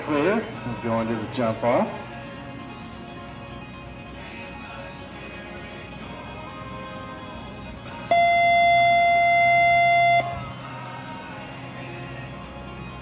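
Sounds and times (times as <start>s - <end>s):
background guitar music: 0.0s - 11.4s
electronic horn tone: 8.1s - 10.5s.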